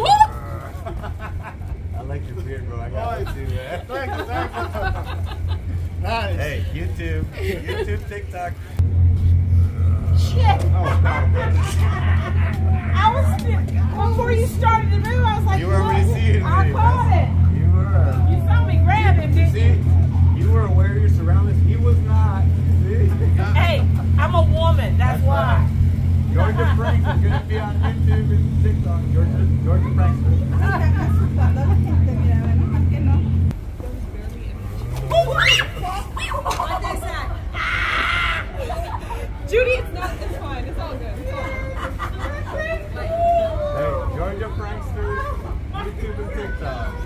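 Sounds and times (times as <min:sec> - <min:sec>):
person crying out startled: 0:00.0 - 0:00.7, 0:37.5 - 0:38.6
low pulsing rumble: 0:00.0 - 0:47.0
street noise: 0:00.0 - 0:47.0
vehicle engine hum: 0:00.0 - 0:47.0
faint voices: 0:06.1 - 0:47.0.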